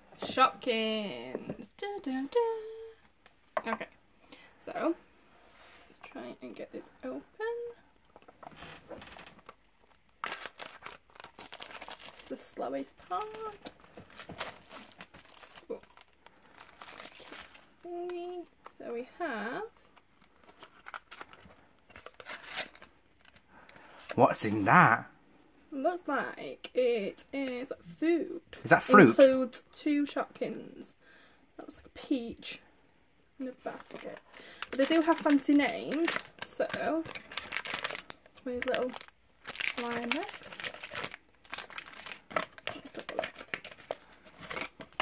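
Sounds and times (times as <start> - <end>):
packaging tearing and crinkling: 9.0 - 12.4, 13.0 - 17.8, 20.2 - 23.4, 33.8 - 45.0.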